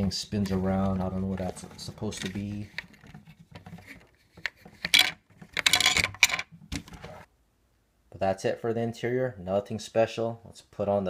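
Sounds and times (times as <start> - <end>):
plastic toy bricks clicking: 4.4 - 6.5.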